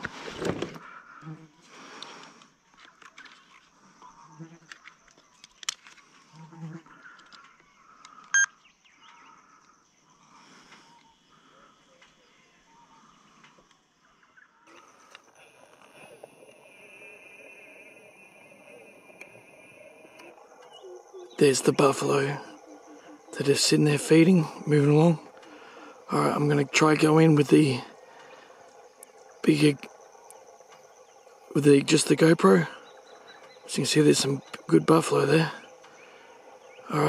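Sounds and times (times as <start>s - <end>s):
high insect drone: 0.0s - 37.0s
short electronic beep: 8.3s - 8.5s.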